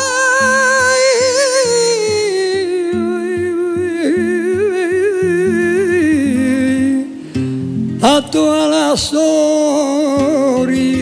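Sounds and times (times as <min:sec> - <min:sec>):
elderly man singing: 0:00.0 - 0:07.2, 0:08.0 - 0:11.0
acoustic guitar picking bass notes: 0:00.0 - 0:11.0.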